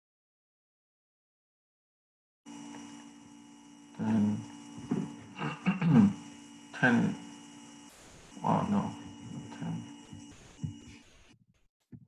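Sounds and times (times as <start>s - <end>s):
electrical mains hum: 2.5s - 11.6s
man speaking: 3.9s - 6.2s, 6.8s - 7.4s, 8.4s - 10.1s.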